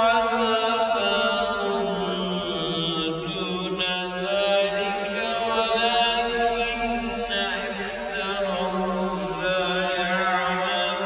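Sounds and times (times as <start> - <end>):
person chanting melodically: 0.0 - 11.0.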